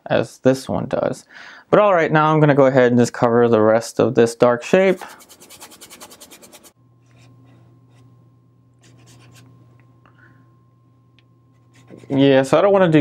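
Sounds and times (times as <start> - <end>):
low steady hum: 0.0 - 13.0
brush scrubbing on canvas: 4.9 - 6.8.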